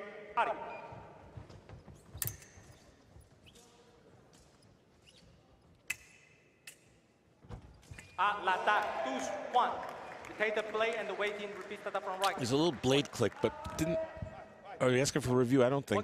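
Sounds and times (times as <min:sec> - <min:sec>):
sabre blades clicking: 0:05.8 - 0:07.1
loud shouting: 0:08.3 - 0:09.8.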